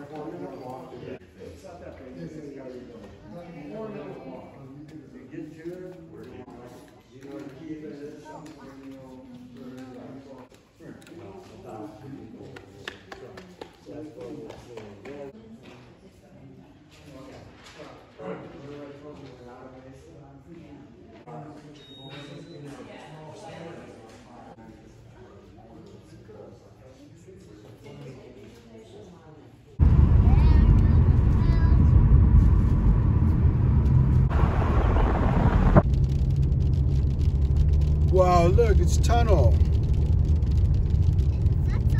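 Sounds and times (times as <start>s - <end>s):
indistinct voices talking: 29.8s - 35.8s, 37.0s - 41.9s
road and engine noise in car: 29.8s - 41.9s.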